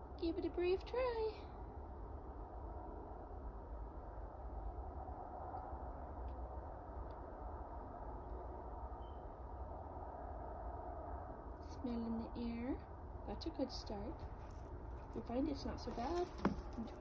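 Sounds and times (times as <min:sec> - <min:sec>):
low rumble and hiss: 0:00.0 - 0:17.0.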